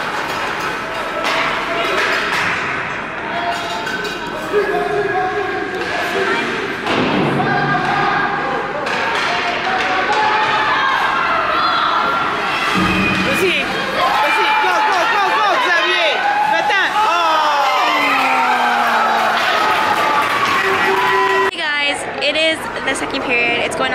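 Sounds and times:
spectators talking and calling out: 0:00.5 - 0:23.9.

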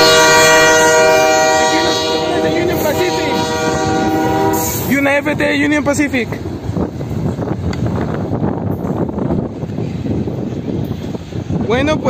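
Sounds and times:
train rumbling away: 0:00.0 - 0:12.0
wind buffeting microphone: 0:00.0 - 0:12.0.

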